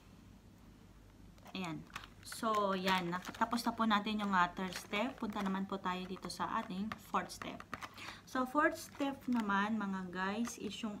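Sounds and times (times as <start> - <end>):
woman speaking: 1.4 - 11.0.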